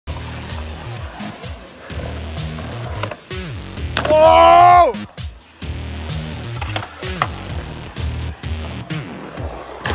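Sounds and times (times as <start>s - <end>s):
skateboard clack: 0.1s - 5.2s, 6.1s - 9.9s
music track: 0.1s - 9.9s
skateboard wheels rolling on concrete: 0.1s - 9.9s.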